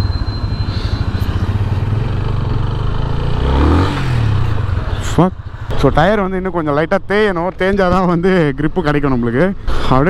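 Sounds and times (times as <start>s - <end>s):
motorcycle engine running: 0.0s - 5.8s.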